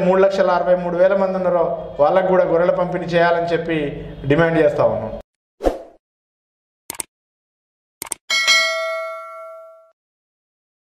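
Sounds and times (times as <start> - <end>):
notification bell ding: 8.3 - 10.0.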